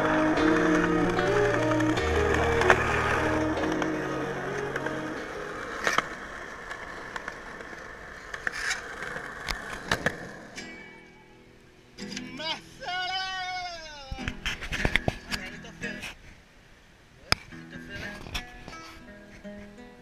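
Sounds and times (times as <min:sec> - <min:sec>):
music with held chords and bass: 0:00.0 - 0:05.2
skateboard clacks: 0:00.0 - 0:10.6
skateboard wheels rolling on concrete: 0:00.0 - 0:20.0.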